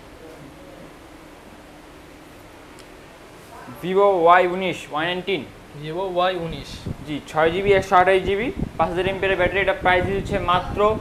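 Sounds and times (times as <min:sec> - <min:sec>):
man speaking: 0:03.7 - 0:11.0.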